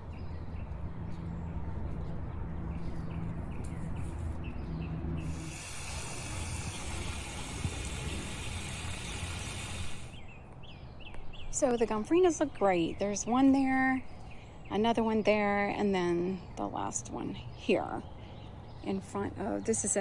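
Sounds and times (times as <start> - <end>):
hose nozzle spraying water: 5.2 - 10.2.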